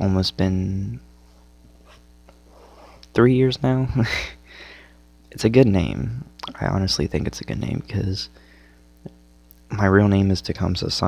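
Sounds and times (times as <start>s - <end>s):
low electrical hum: 0.0s - 11.0s
quiet breath: 4.2s - 5.1s, 8.3s - 8.9s.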